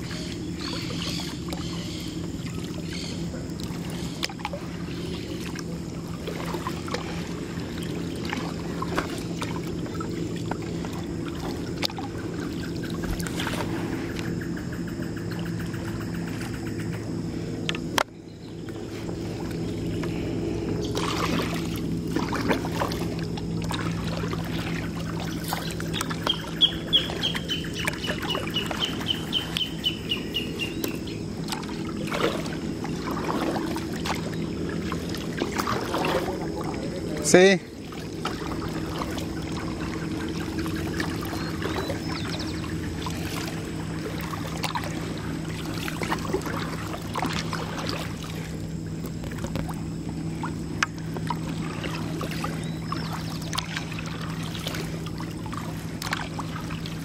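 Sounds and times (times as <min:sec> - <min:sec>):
kayak paddle dipping and knocking: 0:00.0 - 0:57.0
steady low hum: 0:00.0 - 0:57.0
water splashing and dripping: 0:03.5 - 0:14.3, 0:20.9 - 0:29.8, 0:30.8 - 0:57.0
bird trilling: 0:25.2 - 0:31.3.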